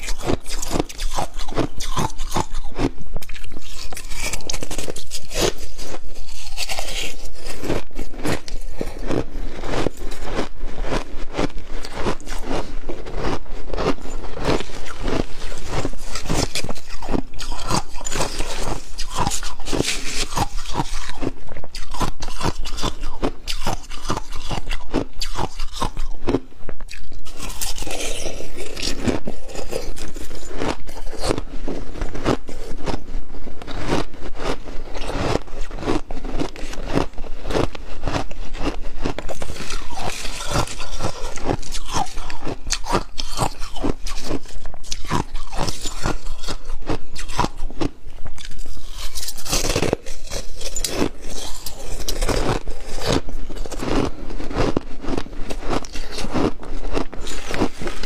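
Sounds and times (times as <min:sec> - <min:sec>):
chewing crushed ice: 0:00.0 - 0:58.0.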